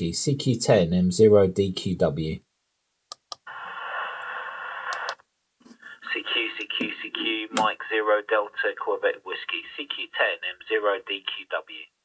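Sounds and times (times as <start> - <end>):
radio speaker hiss: 3.4 - 5.2, 5.8 - 11.9
recorded voice message over speaker: 5.8 - 12.0.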